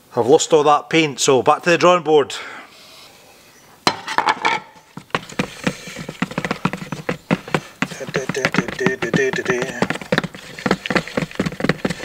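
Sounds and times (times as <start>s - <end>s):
spatula scraping plastic bucket: 4.8s - 12.0s.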